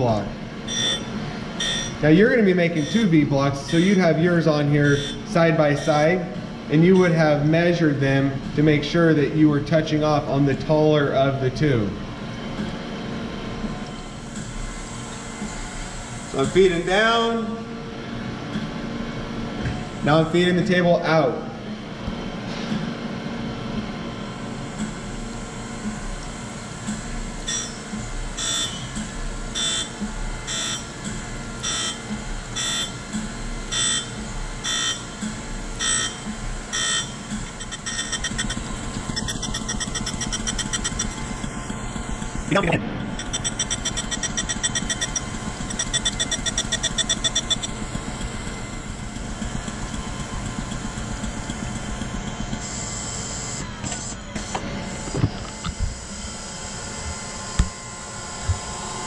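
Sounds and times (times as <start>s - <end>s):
surface grinder wheel whining: 35.8s - 55.7s.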